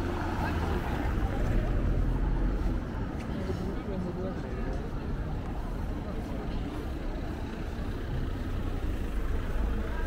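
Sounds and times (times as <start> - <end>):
vehicle traffic rumble: 0.0 - 10.0.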